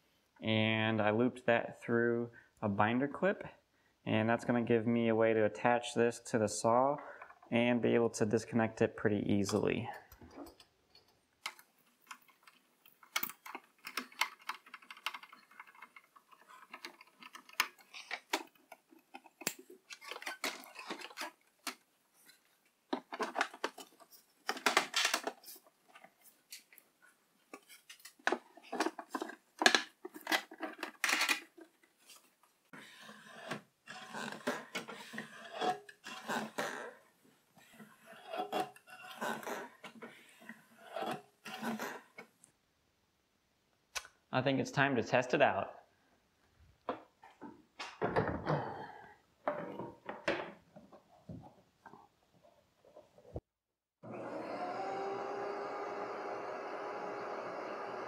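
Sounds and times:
clicks taps and scrapes of parts: 0:09.5 - 0:36.9.

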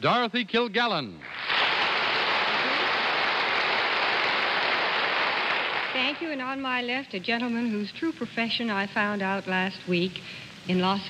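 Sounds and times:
studio audience applauding: 0:01.2 - 0:06.2.

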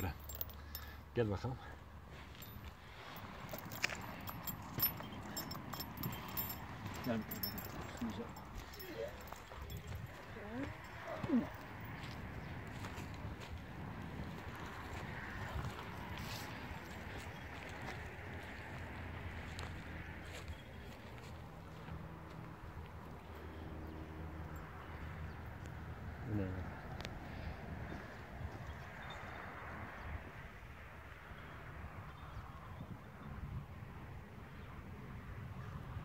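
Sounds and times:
footsteps on dry ground: 0:02.1 - 0:23.0.

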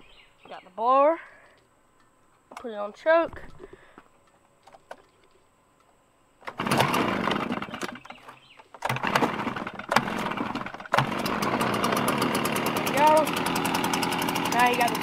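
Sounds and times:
leaf blower engine pull-started: 0:06.4 - 0:15.0.

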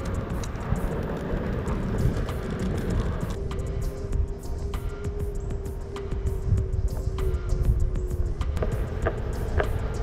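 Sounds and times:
board rolling on concrete rumble: 0:00.0 - 0:05.8, 0:06.4 - 0:10.0.

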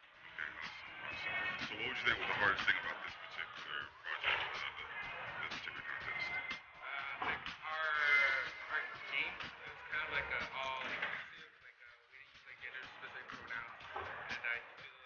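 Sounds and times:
background music: 0:00.0 - 0:15.0
young man talking quietly: 0:00.0 - 0:15.0.

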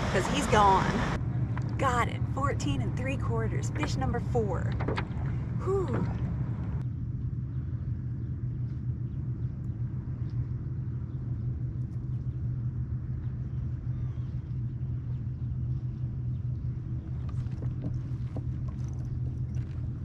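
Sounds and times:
boat motor running: 0:00.0 - 0:06.9, 0:09.7 - 0:20.0.

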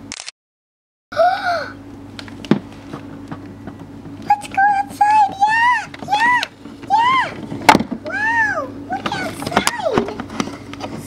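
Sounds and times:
room hum: 0:01.1 - 0:11.0.

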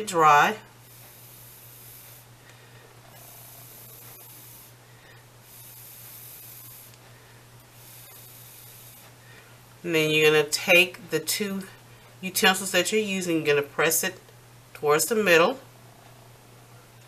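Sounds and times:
steady low hum: 0:00.0 - 0:17.0
person blowing hissing breaths: 0:00.8 - 0:09.6.

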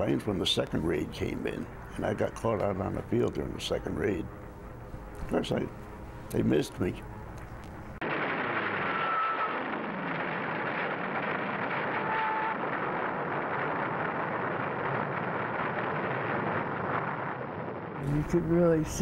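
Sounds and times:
dull steady roar: 0:00.0 - 0:19.0.

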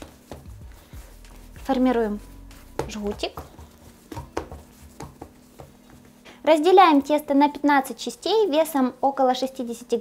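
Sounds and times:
hands patting dough on board: 0:00.0 - 0:06.2.

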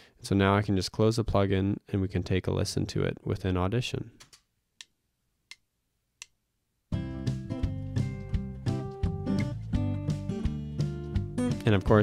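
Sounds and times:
acoustic guitar backing track: 0:06.9 - 0:12.0.

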